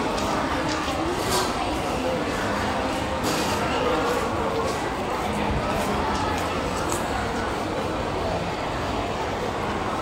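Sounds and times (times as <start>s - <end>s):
shopping mall hum and hubbub: 0.0s - 10.0s.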